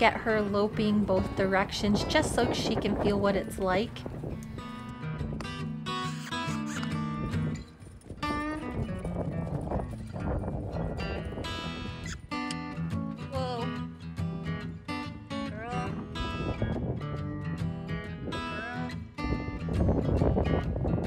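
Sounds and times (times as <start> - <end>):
acoustic guitar music: 0.0 - 21.0.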